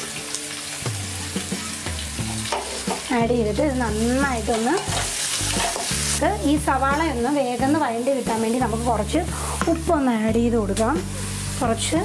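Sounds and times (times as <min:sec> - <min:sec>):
onions sizzling in hot oil: 0:00.0 - 0:12.0
spatula stirring in pan: 0:04.5 - 0:06.2.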